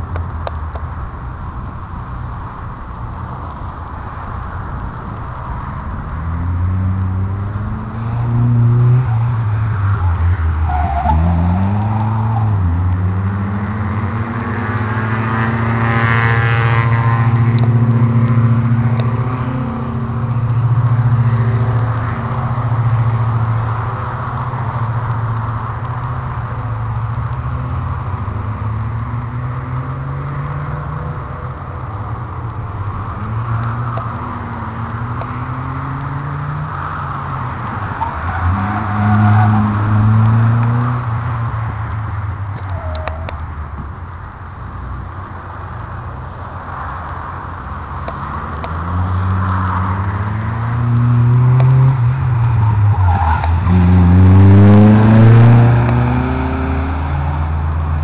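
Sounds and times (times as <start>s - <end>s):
car engine revving: 0.7s - 43.8s, 46.1s - 58.0s.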